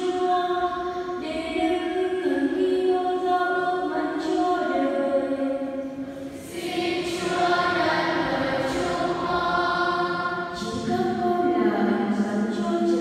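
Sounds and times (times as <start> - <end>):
choir singing slow chant: 6.0 - 11.3.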